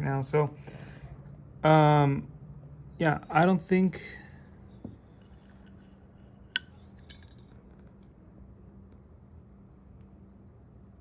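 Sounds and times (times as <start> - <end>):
faint steady hum: 0.0 - 11.0
metal clink against glass beaker: 6.6 - 7.5.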